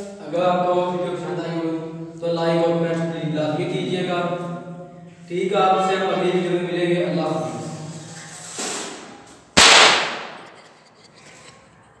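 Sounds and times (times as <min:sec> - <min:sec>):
balloon bursting: 0:09.6 - 0:10.7.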